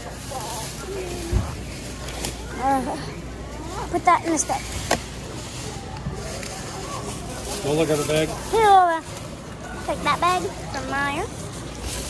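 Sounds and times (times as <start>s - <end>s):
plastic bags rustling: 0.0s - 12.0s.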